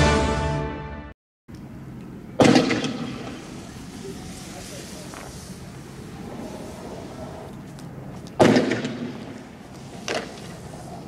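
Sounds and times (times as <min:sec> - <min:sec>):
outdoor background noise: 0:01.5 - 0:11.0
loud gunshot bang: 0:02.4 - 0:03.2, 0:08.4 - 0:09.2.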